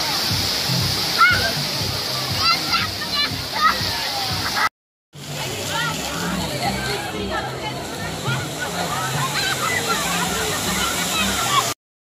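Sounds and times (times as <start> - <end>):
fountain water splashing: 0.0 - 11.8
children shouting: 1.1 - 1.6, 8.8 - 11.8
crowd voices: 1.1 - 11.8.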